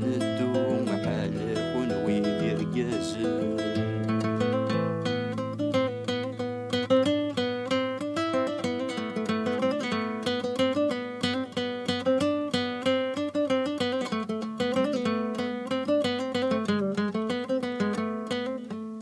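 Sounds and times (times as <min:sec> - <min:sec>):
acoustic guitar picking: 0:00.0 - 0:19.0.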